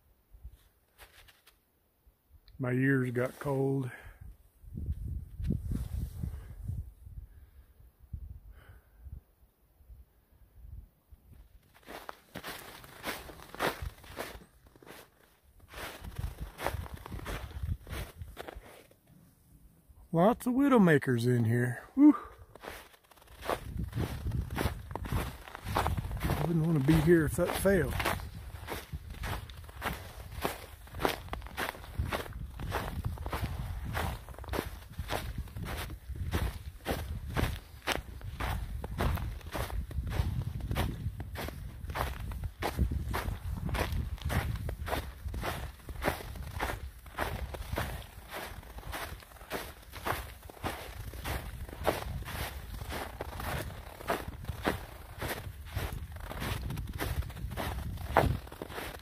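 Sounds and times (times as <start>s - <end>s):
footsteps crunching on snow: 0.5s - 1.6s, 3.0s - 3.9s, 4.9s - 6.5s, 11.3s - 19.0s, 20.4s - 59.0s.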